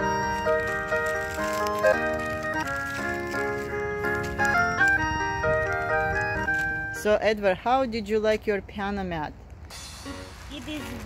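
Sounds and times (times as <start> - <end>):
toy playing synthesized melody: 1.5 - 2.7.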